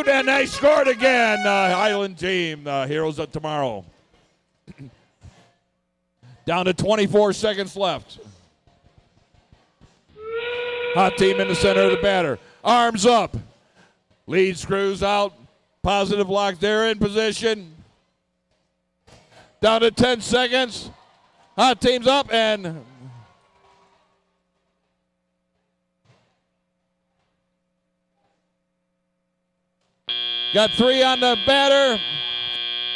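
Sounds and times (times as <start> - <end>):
steam train whistle over speakers: 0.0 - 2.1, 10.2 - 12.4, 30.1 - 32.9
faint steady hum: 30.1 - 32.9.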